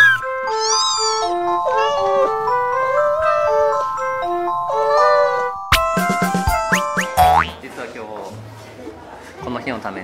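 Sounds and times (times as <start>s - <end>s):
faint background noise: 7.4s - 10.0s.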